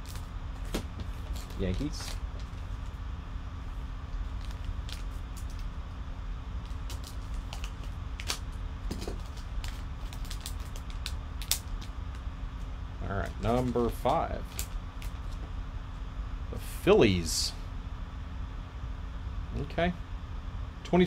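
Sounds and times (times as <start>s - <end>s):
foil pack crinkling: 0.0s - 3.0s, 4.1s - 5.7s, 6.6s - 12.2s, 13.2s - 15.5s
steady low hum: 0.0s - 21.0s.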